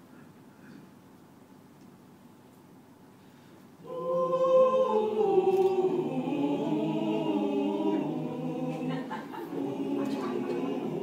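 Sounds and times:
choir singing unaccompanied: 3.8 - 11.0.

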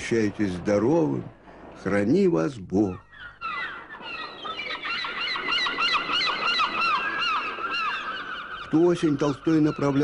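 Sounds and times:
gulls calling: 0.0 - 10.0.

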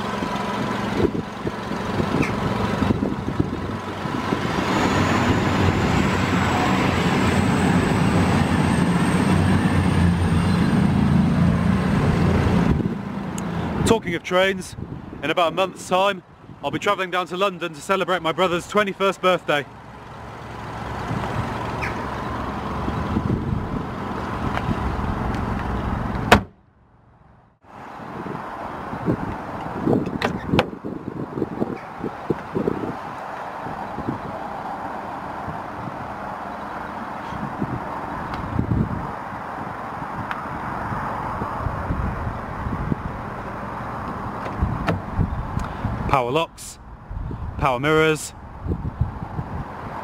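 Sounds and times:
outdoor background noise: 0.0 - 50.0
car bonnet slamming shut: 26.2 - 26.6.

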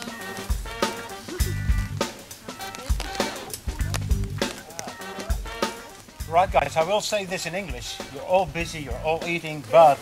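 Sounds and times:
bass line: 0.0 - 6.9, 7.7 - 9.2
drum kit beat: 0.0 - 9.7
funk music: 0.0 - 10.0.

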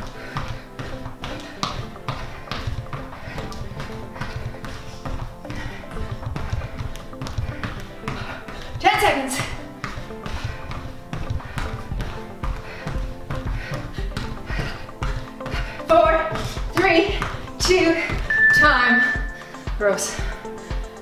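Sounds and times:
sneakers tapping on rubber dome: 0.0 - 19.8
background music with steady beat: 0.0 - 21.0.

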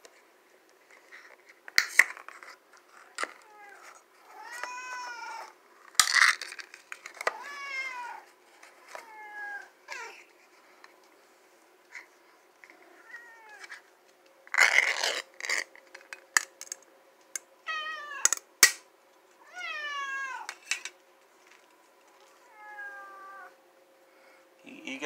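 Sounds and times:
cat meowing: 19.4 - 20.5, 22.4 - 23.6.

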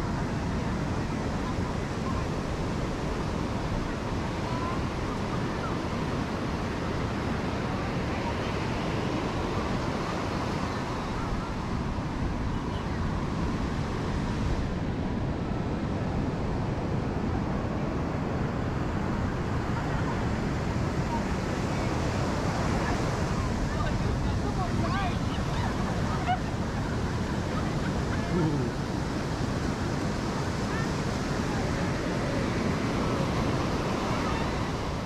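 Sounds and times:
ocean surf on sandy beach: 0.0 - 35.0.

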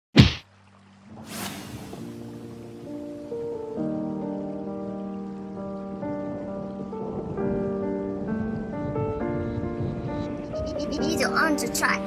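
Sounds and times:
sharp hit: 0.2 - 0.4.

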